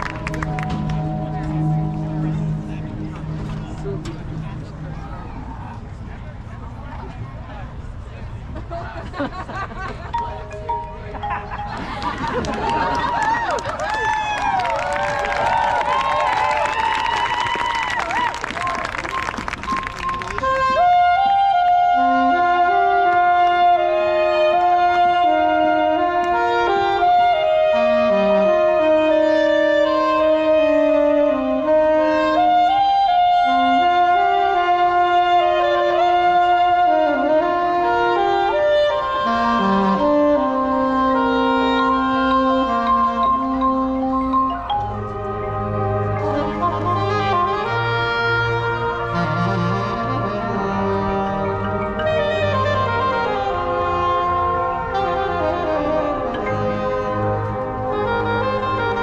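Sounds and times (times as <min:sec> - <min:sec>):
low brass: 0:00.0 - 0:06.5, 0:20.2 - 0:59.0
marching band wind melody: 0:00.0 - 0:06.8, 0:07.8 - 0:59.0
crowd cheering and whistling: 0:11.7 - 0:20.4.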